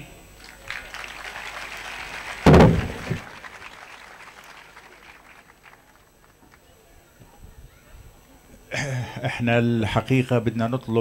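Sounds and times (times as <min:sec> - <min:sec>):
crowd applauding: 0:00.4 - 0:06.6
loud thump: 0:02.5 - 0:03.3.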